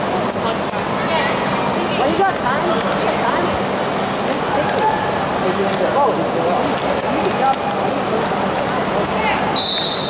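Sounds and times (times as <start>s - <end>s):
background chatter: 0.0s - 10.0s
shoe squeaks: 0.2s - 1.2s, 6.6s - 8.0s, 8.8s - 10.0s.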